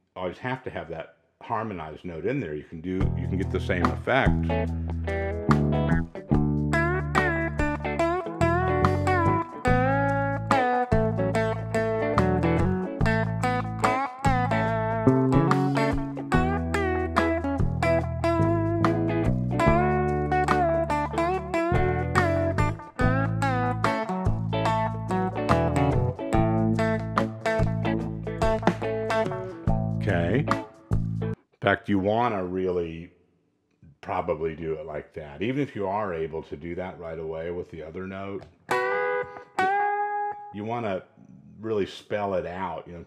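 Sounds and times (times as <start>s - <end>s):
low bass notes: 3.0s - 31.4s
electric guitar lead with bends: 4.3s - 31.4s, 38.7s - 40.5s.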